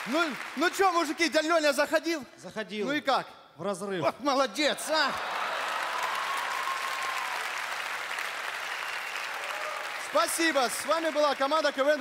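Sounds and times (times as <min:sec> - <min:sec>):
large audience applauding: 0:00.0 - 0:01.4, 0:04.9 - 0:12.0.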